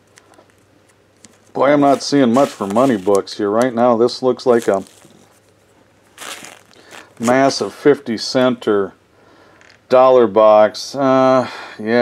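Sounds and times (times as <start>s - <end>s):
plastic sleeves rustling: 0.0s - 8.0s.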